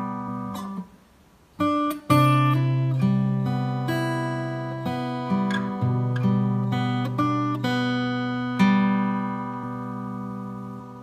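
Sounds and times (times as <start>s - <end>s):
fingerstyle acoustic guitar: 0.0s - 11.0s.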